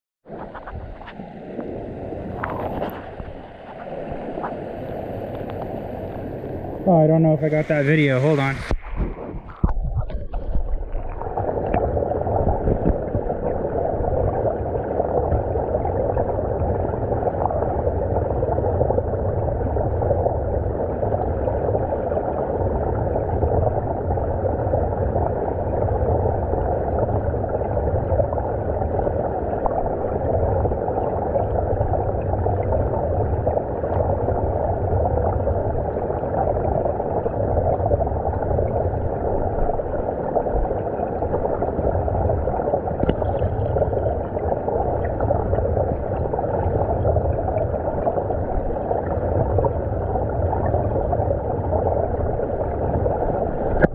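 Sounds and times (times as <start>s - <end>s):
muffled underwater water rush: 0.2s - 53.9s.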